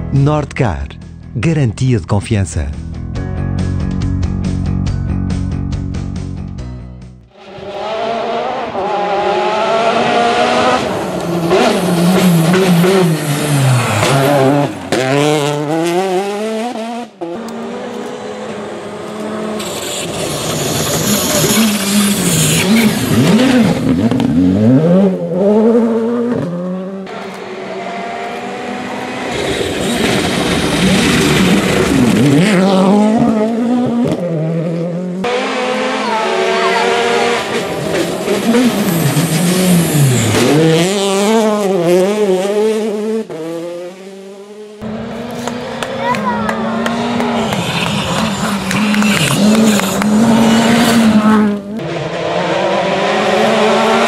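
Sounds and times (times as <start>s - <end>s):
rally car engines revving: 7.3s - 54.0s.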